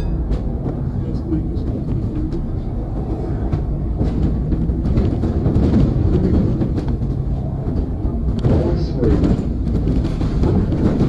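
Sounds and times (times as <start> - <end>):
bodywork rattles and clicks: 0.0 - 11.0
bus engine and road rumble: 0.0 - 11.0.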